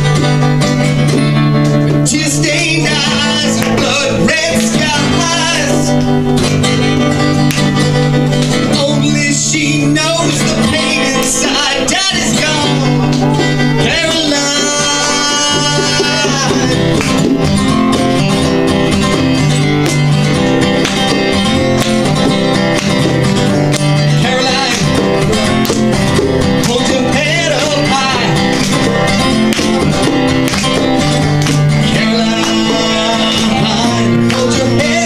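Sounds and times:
acoustic guitars strummed and picked: 0:00.0 - 0:35.0.

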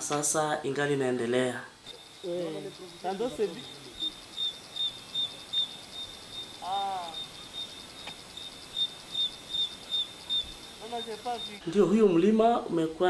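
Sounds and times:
insect chirping: 0:01.9 - 0:11.6.

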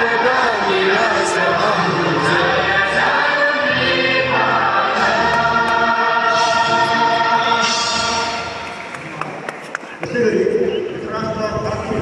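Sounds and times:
choir singing an anthem: 0:00.0 - 0:08.7.

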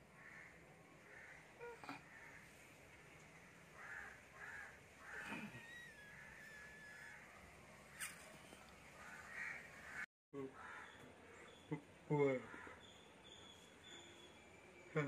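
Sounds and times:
crows cawing faintly: 0:00.0 - 0:11.6, 0:12.2 - 0:13.4.

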